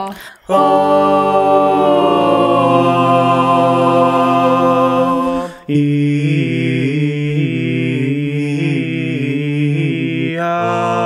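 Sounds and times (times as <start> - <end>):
a cappella ensemble singing chords: 0.2 - 11.0.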